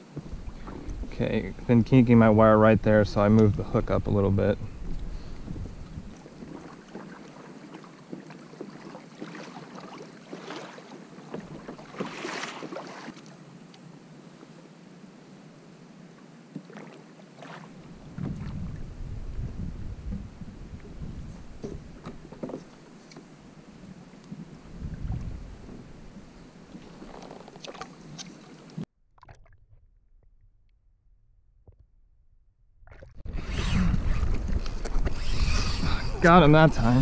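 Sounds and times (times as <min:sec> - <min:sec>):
water lapping at hull: 0:00.0 - 0:13.4, 0:16.5 - 0:29.5
wind on microphone: 0:00.2 - 0:06.6, 0:17.8 - 0:22.4, 0:23.8 - 0:27.1, 0:33.3 - 0:37.0.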